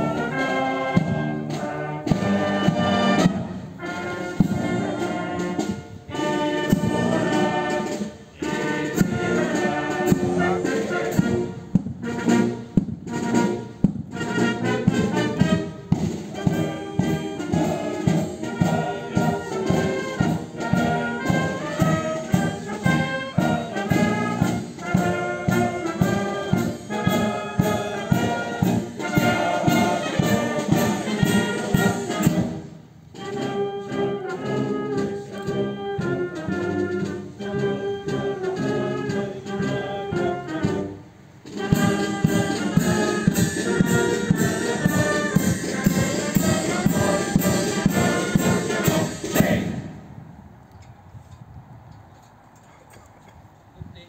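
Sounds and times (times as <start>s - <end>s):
wind band with trumpets and trombones: 0.0s - 54.0s.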